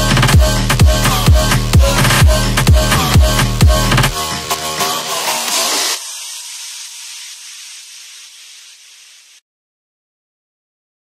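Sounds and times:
high-pitched hiss: 0:04.2 - 0:09.4.

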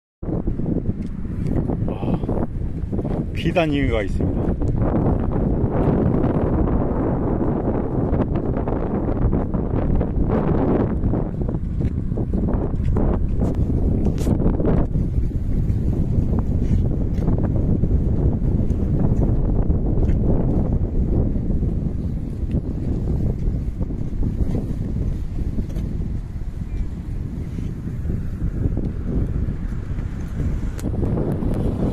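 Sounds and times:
wind buffeting microphone: 0:00.2 - 0:31.9.

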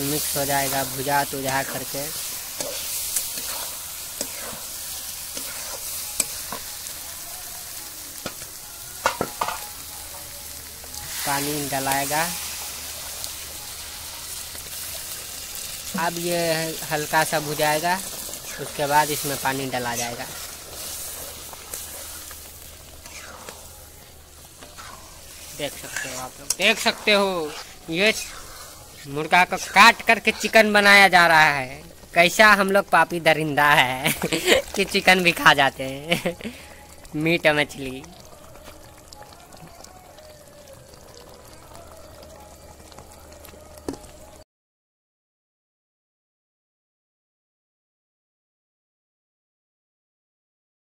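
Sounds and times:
food sizzling in hot oil: 0:00.0 - 0:44.4
thick gravy bubbling and sputtering: 0:00.0 - 0:44.4.

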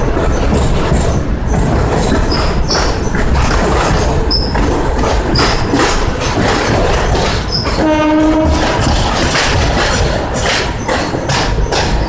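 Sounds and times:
clacks over rail joints: 0:00.0 - 0:12.0
train wheels rumbling on rails: 0:00.0 - 0:12.0
high wheel squeal: 0:07.5 - 0:08.6
train horn tone: 0:07.8 - 0:08.8.

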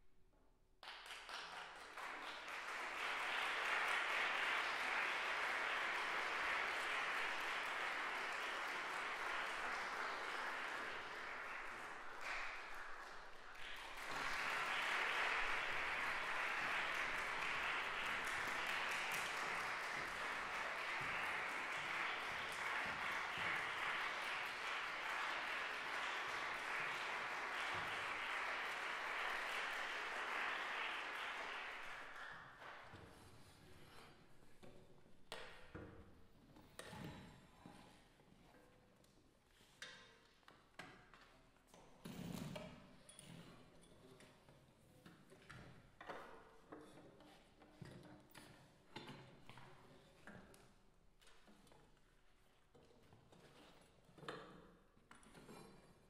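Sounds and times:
audience applauding: 0:00.8 - 0:33.0.

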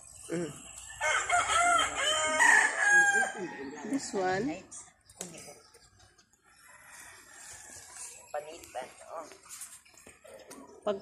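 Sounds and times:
rooster crowing: 0:01.0 - 0:04.0.

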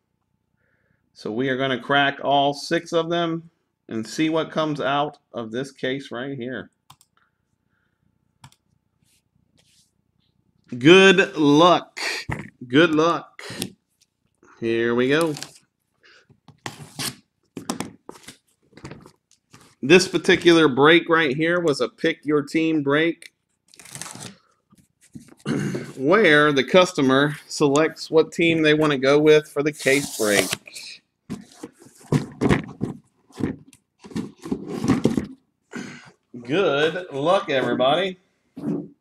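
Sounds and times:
packaging being torn open: 0:23.7 - 0:24.4.

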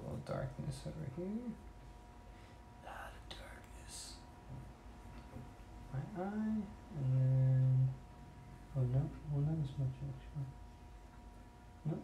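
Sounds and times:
faint steady hum: 0:00.0 - 0:12.0
man whispering faintly: 0:02.8 - 0:04.3.

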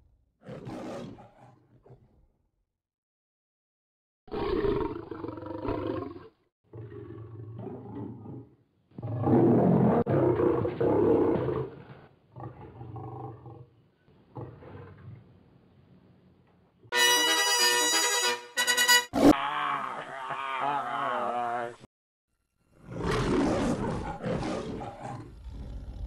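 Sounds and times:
lion roaring and growling: 0:00.4 - 0:02.1, 0:04.3 - 0:13.7, 0:14.3 - 0:15.2, 0:22.7 - 0:26.0.

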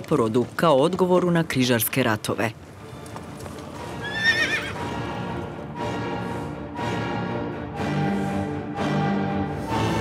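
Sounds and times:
hooves clip-clopping: 0:00.0 - 0:05.7
horse whinnying: 0:04.0 - 0:04.8.

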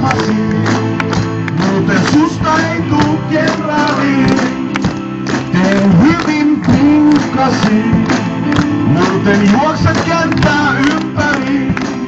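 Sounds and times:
man singing: 0:00.0 - 0:12.0.

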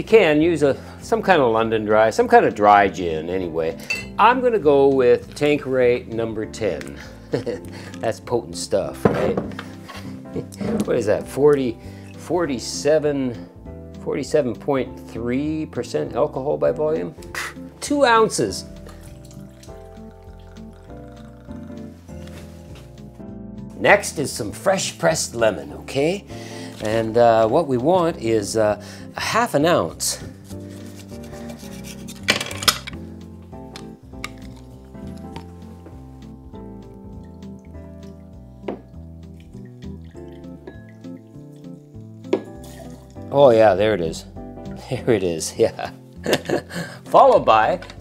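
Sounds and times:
background music: 0:00.0 - 0:48.0
metal jigger clinking on glass: 0:03.8 - 0:04.2, 0:40.7 - 0:41.1, 0:42.4 - 0:43.1
liquor pouring into a glass: 0:18.8 - 0:22.0, 0:37.1 - 0:43.3.

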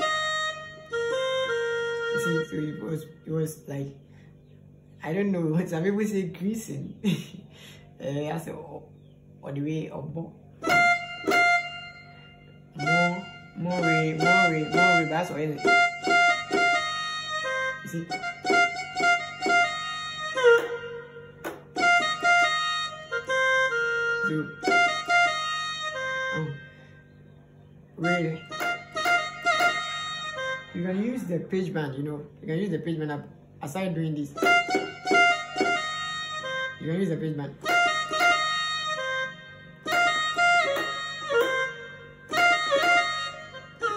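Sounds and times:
electronic keyboard chords and melody: 0:00.0 - 0:02.8, 0:10.6 - 0:26.8, 0:28.0 - 0:31.2, 0:37.6 - 0:43.9.

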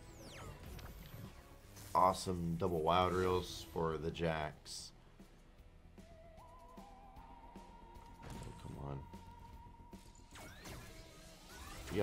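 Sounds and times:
quiet game music: 0:00.0 - 0:12.0.

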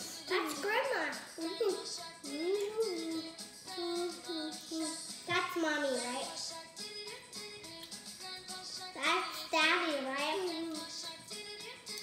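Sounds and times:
girl singing wordless tune: 0:00.0 - 0:12.0.

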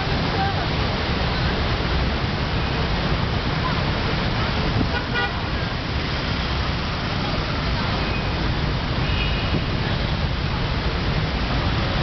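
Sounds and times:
passing cars and scooters: 0:00.0 - 0:12.0
car horn toot: 0:04.9 - 0:05.4.

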